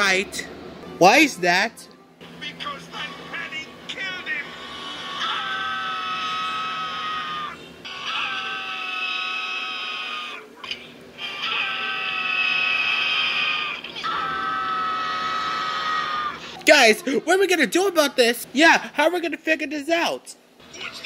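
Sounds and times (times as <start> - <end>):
cartoon voices screaming: 5.0 - 10.5, 11.2 - 16.5.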